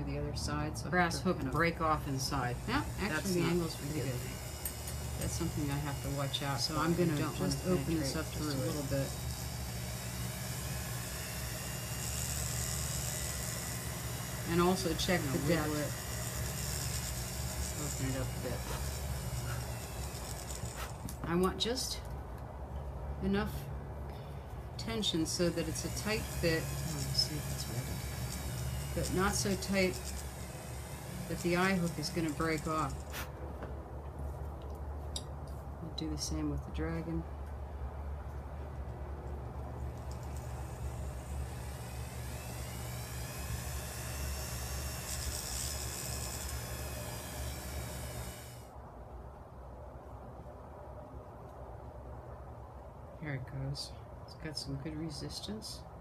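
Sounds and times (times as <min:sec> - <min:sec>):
rotary tool motor hum: 0:02.0 - 0:21.2, 0:25.0 - 0:33.2, 0:39.6 - 0:48.8.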